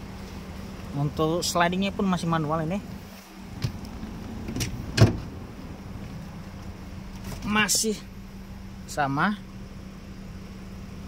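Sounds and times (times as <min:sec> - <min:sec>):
low hum in car cabin: 0:00.0 - 0:11.0
seat rail latching clunk: 0:04.4 - 0:05.4.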